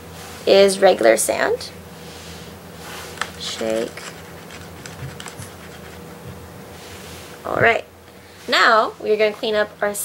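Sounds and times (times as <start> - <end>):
low hum: 2.7 - 8.2.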